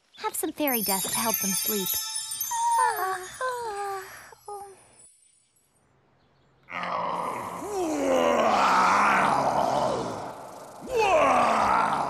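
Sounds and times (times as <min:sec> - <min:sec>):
cartoon monster groaning: 0:06.7 - 0:12.0.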